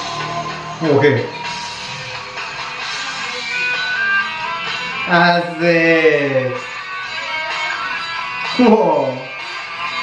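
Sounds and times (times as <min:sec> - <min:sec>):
rock band song: 0:00.0 - 0:10.0.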